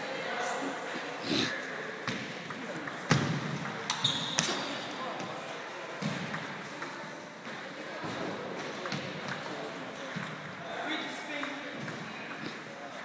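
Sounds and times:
voices murmuring in a hall: 0.0 - 13.0.

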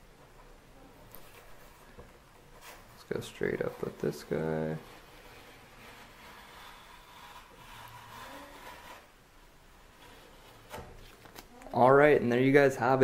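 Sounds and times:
tape peeling off: 5.0 - 9.1, 10.0 - 11.7.

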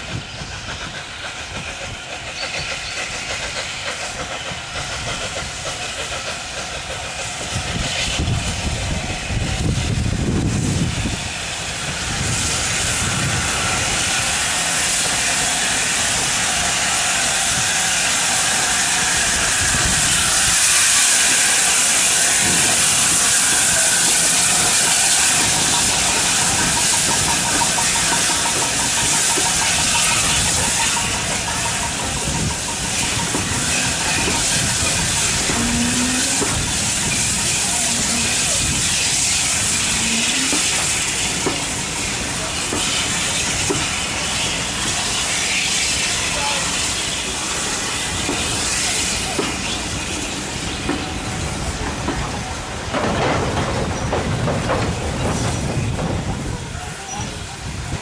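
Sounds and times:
loud hiss of steam: 0.0 - 58.0
steam locomotive passing: 0.0 - 58.0.

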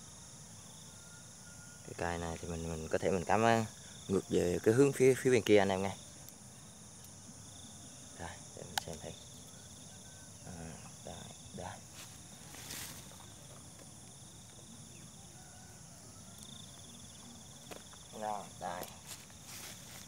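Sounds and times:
insects chorus in grass: 0.0 - 20.0
pulsing insect trill: 0.0 - 20.0.

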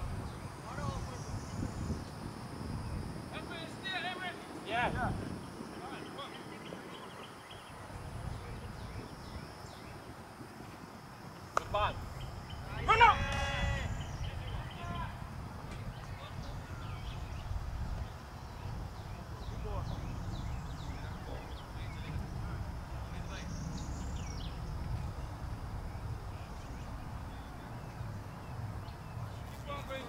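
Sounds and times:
sharp crack: 11.5 - 12.0
players shouting: 12.6 - 15.2.

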